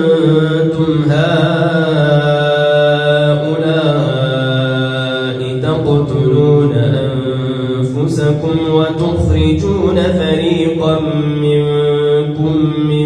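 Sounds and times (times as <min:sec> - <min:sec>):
man chanting recitation: 0:00.0 - 0:13.0.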